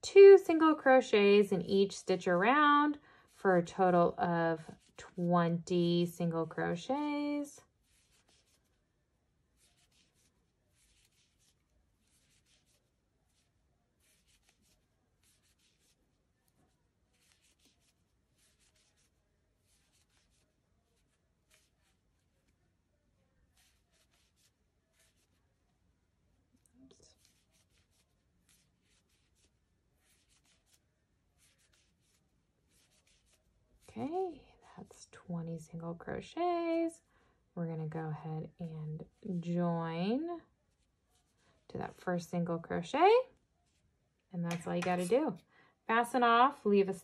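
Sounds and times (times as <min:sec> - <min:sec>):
woman's voice: 0:00.0 - 0:07.6, 0:33.9 - 0:37.0, 0:37.6 - 0:40.4, 0:41.7 - 0:43.3, 0:44.3 - 0:47.0
rustling of yarn: 0:00.1 - 0:35.2, 0:37.8 - 0:47.0.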